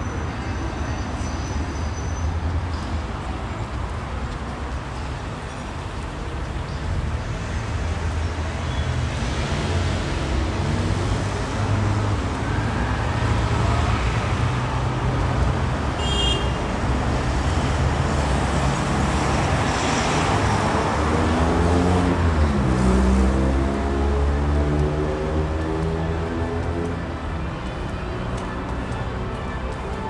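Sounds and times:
cars driving past: 0:07.0 - 0:30.0.

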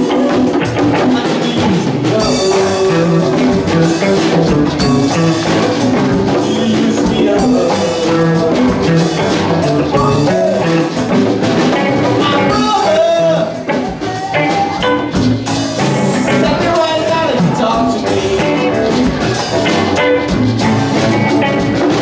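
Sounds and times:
live latin rock band: 0:00.0 - 0:22.0.

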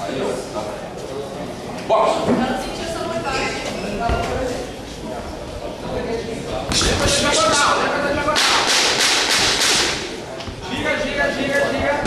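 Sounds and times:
boxing gloves slapping: 0:08.4 - 0:10.0.

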